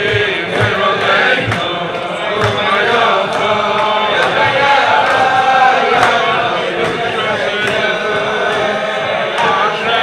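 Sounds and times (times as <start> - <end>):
low thumps keeping beat: 0.0 - 10.0
men singing wordless melody: 0.0 - 10.0.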